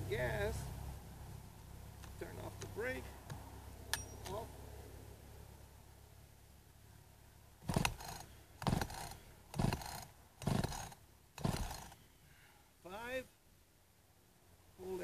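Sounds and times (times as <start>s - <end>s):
chainsaw starter cord yanks: 7.6s - 12.0s.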